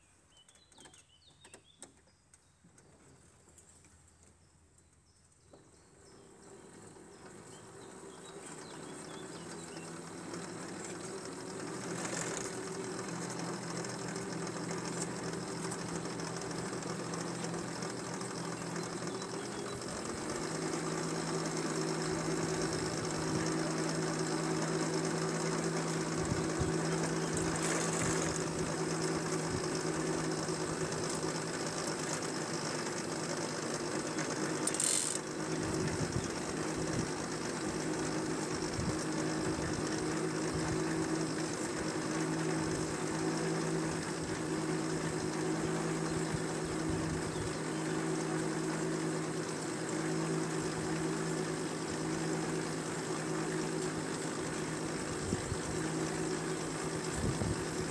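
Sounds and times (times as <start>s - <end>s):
small machine hum with gear whine: 0.0s - 57.9s.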